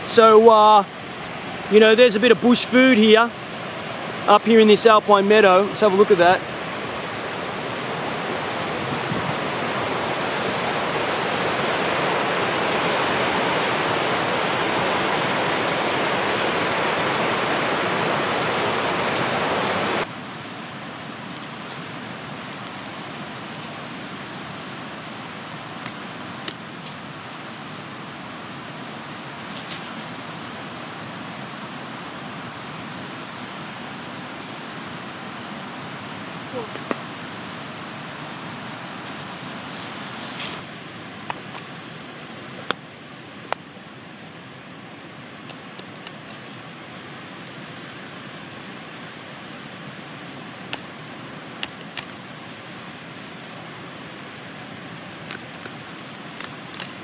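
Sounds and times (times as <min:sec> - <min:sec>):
mountain stream rushing: 0:00.0 - 0:57.0.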